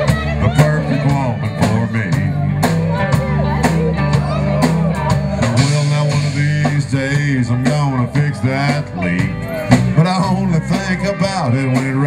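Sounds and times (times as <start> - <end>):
bass line: 0.0 - 12.0
drum kit: 0.0 - 12.0
guitar: 0.0 - 12.0.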